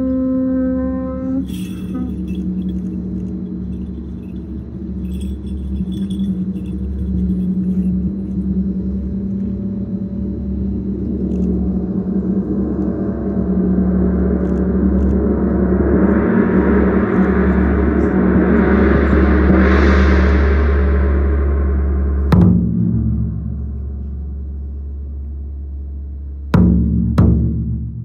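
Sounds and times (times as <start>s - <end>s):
sustained low hum: 0.0s - 28.0s
large drum roll rumbling: 11.6s - 28.0s.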